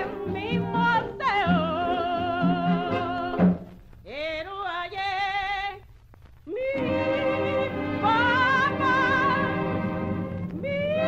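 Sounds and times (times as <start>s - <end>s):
woman singing with vibrato: 0.0s - 5.9s, 6.5s - 11.0s.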